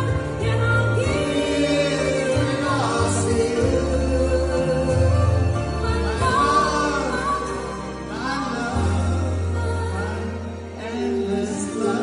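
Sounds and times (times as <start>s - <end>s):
amplified instrumental accompaniment: 0.0s - 12.0s
steady bass line: 0.0s - 12.0s
two men singing: 0.9s - 12.0s.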